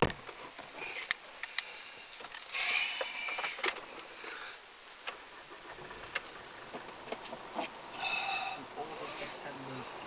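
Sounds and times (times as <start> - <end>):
light rattles: 0.0 - 7.8.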